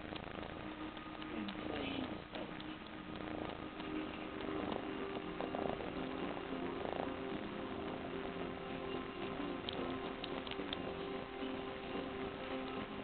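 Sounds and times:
kitten purring: 0:00.0 - 0:13.0.

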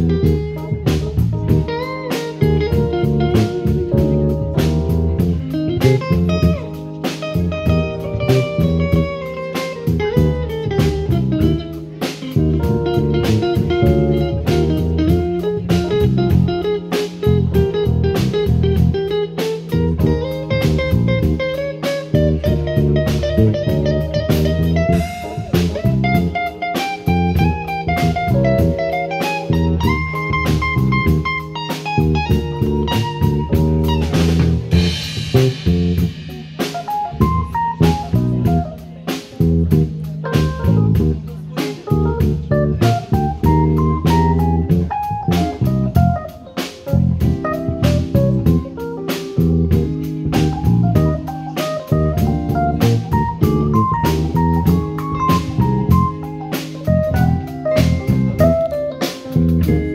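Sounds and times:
bass: 0:00.0 - 0:59.9
drum kit: 0:00.0 - 0:59.9
electric guitar: 0:00.0 - 0:59.9
keyboard: 0:00.0 - 0:59.9.

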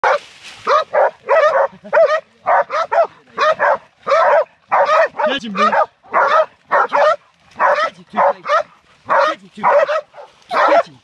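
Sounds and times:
puppies barking rapidly: 0:00.0 - 0:11.0.

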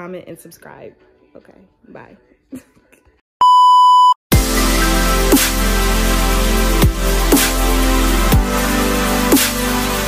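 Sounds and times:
steady test tone beep: 0:03.4 - 0:04.2.

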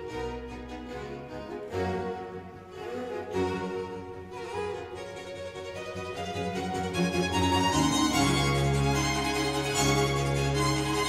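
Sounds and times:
bowed strings classical music: 0:00.0 - 0:11.0.

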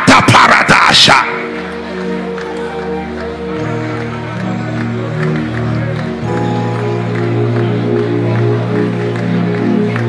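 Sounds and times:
worship music of held chords: 0:00.9 - 0:10.0.

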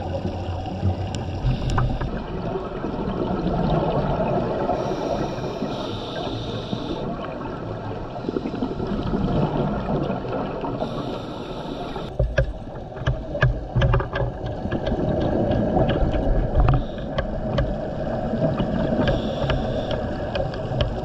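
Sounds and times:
underwater rumble: 0:00.0 - 0:21.0.

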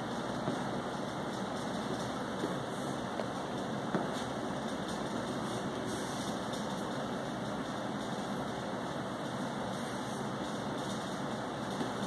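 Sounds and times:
electric fan air rush: 0:00.0 - 0:12.0.

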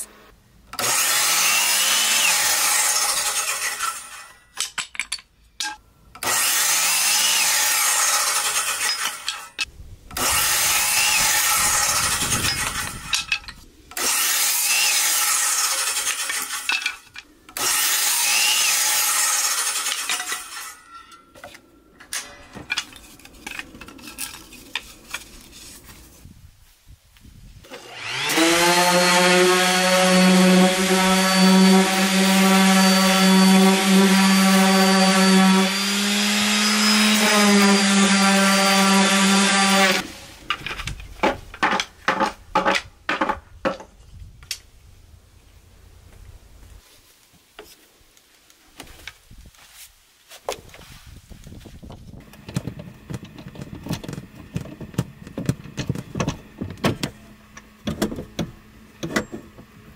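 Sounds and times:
miter saw cutting wood: 0:00.0 - 0:04.4, 0:06.2 - 0:13.2, 0:13.9 - 0:21.0, 0:27.7 - 0:40.2
wood clatter: 0:03.7 - 0:05.8, 0:11.6 - 0:14.1, 0:15.8 - 0:17.6, 0:19.6 - 0:26.2, 0:40.4 - 0:44.6, 0:51.8 - 0:57.2
orbital sander humming: 0:27.8 - 0:40.0.

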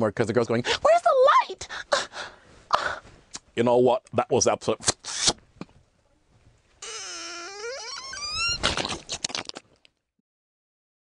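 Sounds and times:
squeaky vocal wail: 0:06.8 - 0:09.0.

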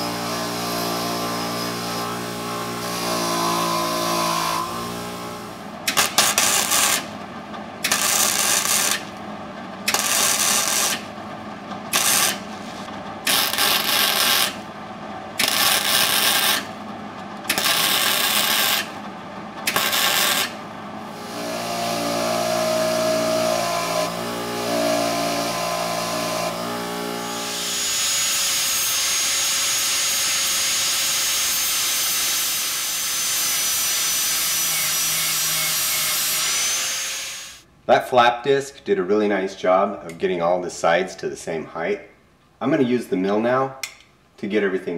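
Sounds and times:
bench grinder grinding: 0:00.0 - 0:07.2, 0:07.8 - 0:09.2, 0:09.9 - 0:11.2, 0:11.8 - 0:14.6, 0:15.4 - 0:16.7, 0:17.5 - 0:19.0, 0:19.6 - 0:37.6
welder crackling: 0:00.0 - 0:07.2, 0:07.8 - 0:09.2, 0:09.8 - 0:11.1, 0:11.9 - 0:14.7, 0:15.4 - 0:16.8, 0:17.5 - 0:19.0, 0:19.6 - 0:37.7
high grinding whine: 0:00.0 - 0:37.6.

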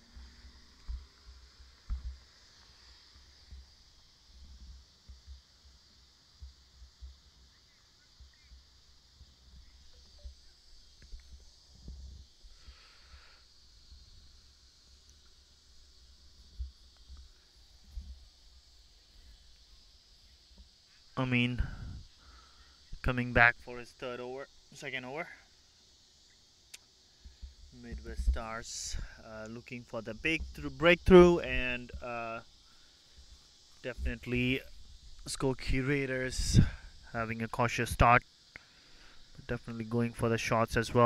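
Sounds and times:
insects chirping: 0:00.0 - 0:41.0.

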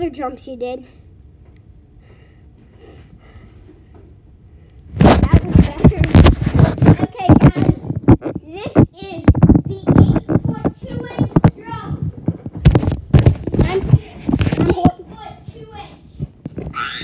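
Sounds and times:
distorted children's voices: 0:05.0 - 0:17.0.

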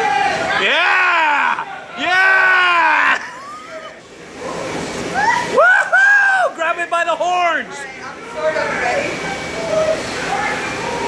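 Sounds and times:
men whooping and yelling: 0:00.0 - 0:04.0, 0:05.1 - 0:06.6.

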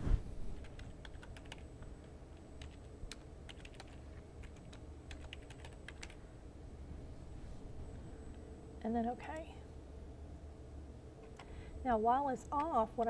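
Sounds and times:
computer keyboard typing: 0:00.6 - 0:06.2.

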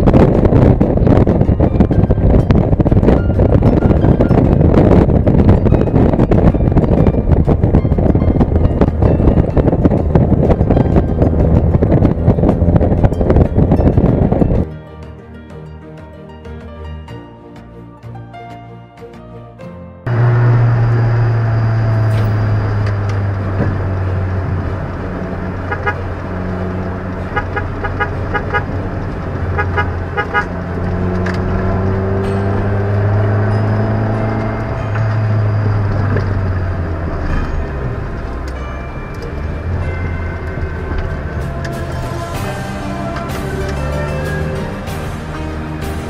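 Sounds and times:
vehicle engines humming: 0:00.0 - 0:14.7, 0:20.1 - 0:46.0
music playing: 0:00.0 - 0:20.7, 0:21.9 - 0:46.0
car horn tooting: 0:25.6 - 0:26.2, 0:27.2 - 0:28.9, 0:29.5 - 0:30.7.

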